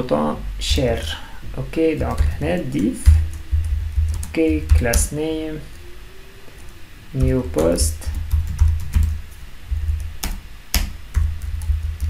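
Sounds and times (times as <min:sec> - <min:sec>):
computer keyboard typing: 0:02.0 - 0:05.2, 0:07.2 - 0:12.0.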